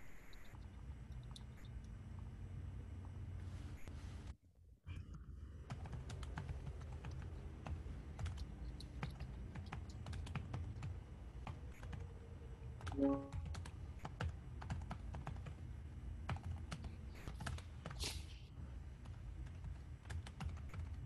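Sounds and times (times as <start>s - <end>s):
low steady hum: 0.0s - 21.0s.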